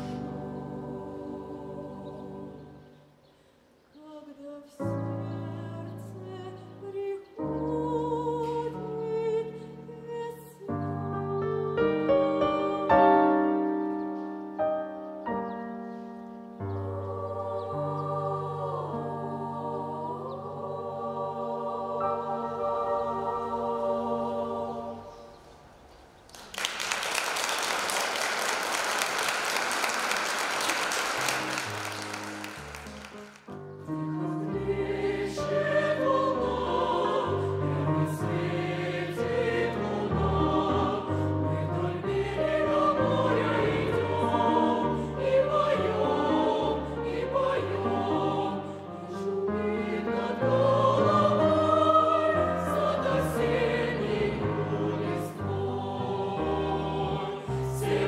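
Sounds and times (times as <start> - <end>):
mixed choir singing: 0.0 - 3.2, 4.3 - 13.7, 16.6 - 25.7, 33.9 - 58.0
audience applause: 26.3 - 33.6.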